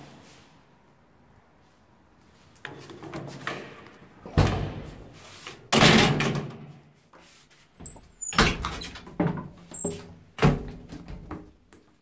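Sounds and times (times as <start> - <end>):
elevator doors banging and rattling: 5.7 - 6.7, 7.8 - 11.3
short high squeak: 7.8 - 8.4, 9.7 - 10.5.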